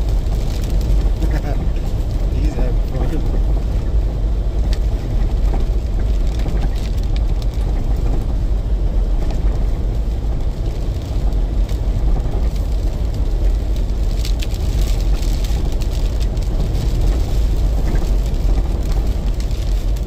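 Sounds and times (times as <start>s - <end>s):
vehicle driving on rough road: 0.0s - 20.0s
light ticks: 4.6s - 8.3s.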